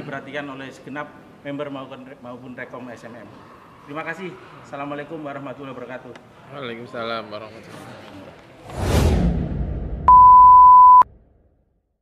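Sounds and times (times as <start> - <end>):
low rumble: 8.7 - 10.2
steady single-pitched beep tone: 10.1 - 11.1.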